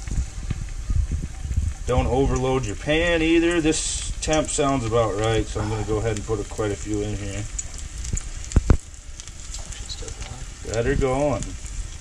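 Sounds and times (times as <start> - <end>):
fish frying in hot oil: 0.0 - 12.0.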